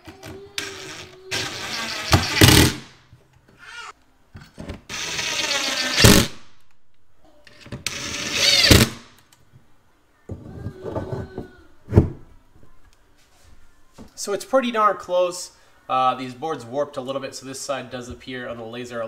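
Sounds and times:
cordless drill driving screws: 0:00.6 - 0:02.8, 0:04.9 - 0:06.3, 0:07.9 - 0:09.0.

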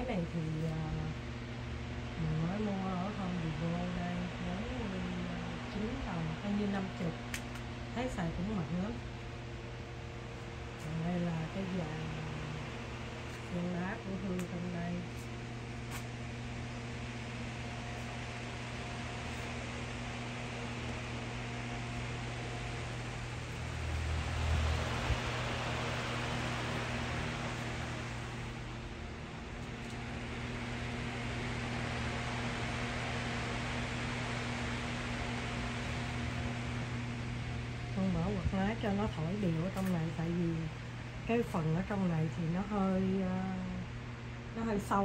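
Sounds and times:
electric fans blowing air: 0:00.0 - 0:45.0.

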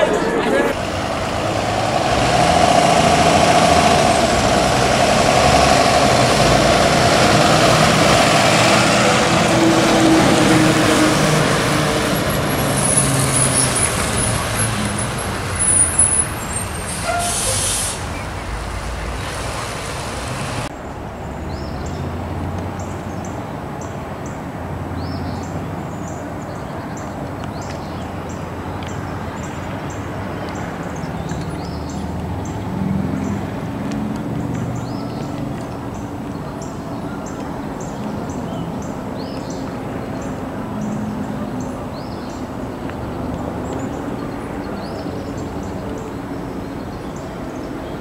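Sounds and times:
diesel bus driving: 0:00.0 - 0:48.0
high brake squeal: 0:15.6 - 0:18.3
air brakes hissing: 0:16.5 - 0:18.3.

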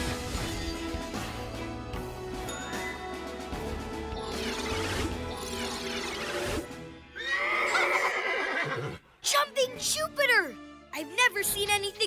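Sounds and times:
music: 0:00.0 - 0:12.0
cartoon horse whinnying: 0:04.4 - 0:09.0.

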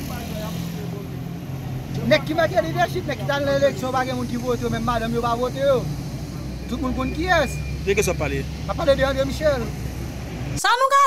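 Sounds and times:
vehicle engine running: 0:00.0 - 0:10.6
outdoor street noise: 0:00.0 - 0:11.0.

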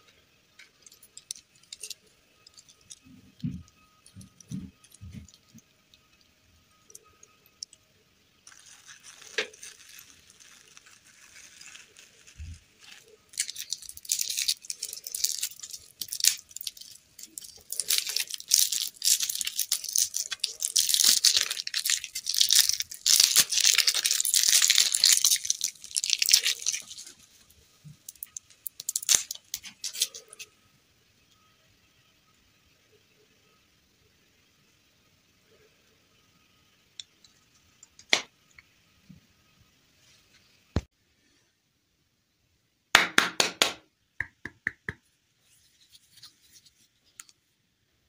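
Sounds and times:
plastic wrapper crinkling: 0:00.6 - 0:06.2, 0:08.4 - 0:30.5.

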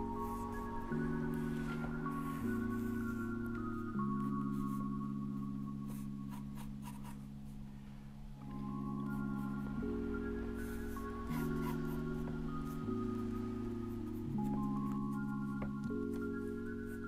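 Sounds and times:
soft background music: 0:00.0 - 0:17.0
pencil scratching on paper: 0:00.2 - 0:00.8, 0:05.8 - 0:07.3, 0:10.6 - 0:15.6.

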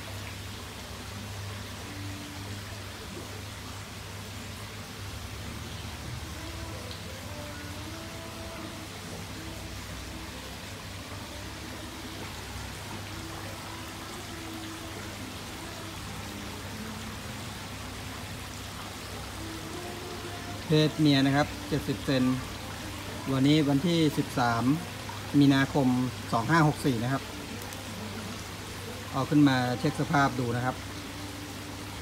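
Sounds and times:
running water rushing: 0:00.0 - 0:32.0.

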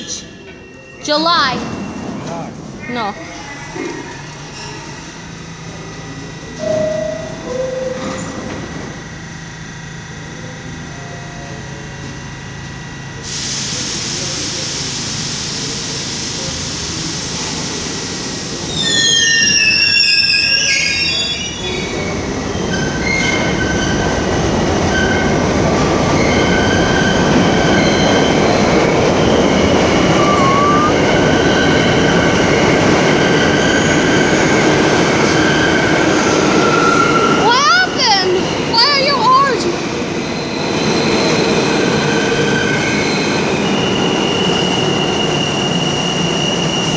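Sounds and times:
train motor whine: 0:00.0 - 0:46.9
train rumbling past: 0:00.0 - 0:46.9
metallic wheel squeal: 0:18.7 - 0:21.9, 0:29.9 - 0:31.7
short tones: 0:29.9 - 0:31.2.

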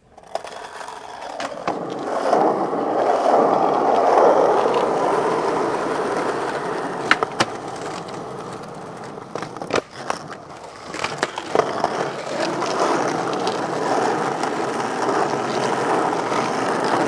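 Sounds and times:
skateboard clacks: 0:00.0 - 0:17.0
skateboard wheels rolling on pavement: 0:00.0 - 0:17.0.

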